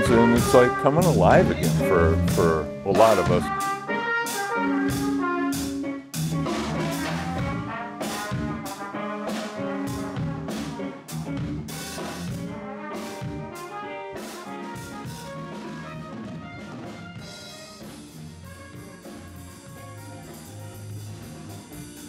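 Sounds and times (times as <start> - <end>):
drums with cymbal strokes: 0.0 - 22.0
trumpet playing jazz: 0.0 - 22.0.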